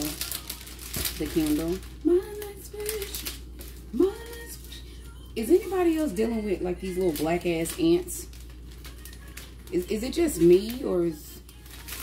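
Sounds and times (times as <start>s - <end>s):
woman's sing-song voice: 0.0s - 12.0s.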